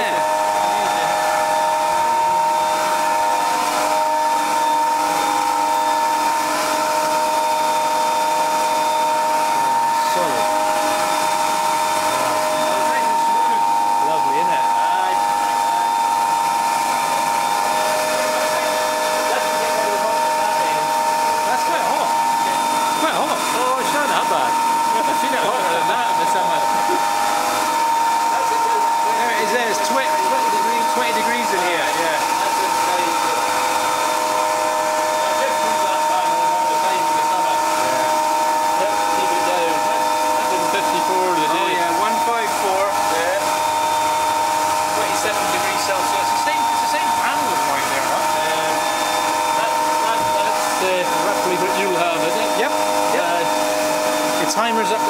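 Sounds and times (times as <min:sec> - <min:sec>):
turbine machine whine: 0:00.0 - 0:55.0.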